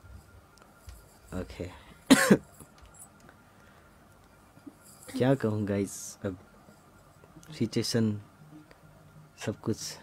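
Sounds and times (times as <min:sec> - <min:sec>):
person coughing: 0:02.1 - 0:02.5.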